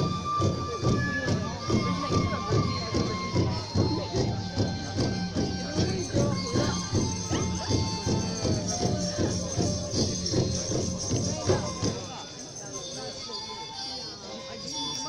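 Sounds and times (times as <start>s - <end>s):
drum beating quick rhythm: 0.0s - 12.2s
bamboo flute long notes: 0.0s - 15.0s
cymbals jingling: 1.6s - 15.0s.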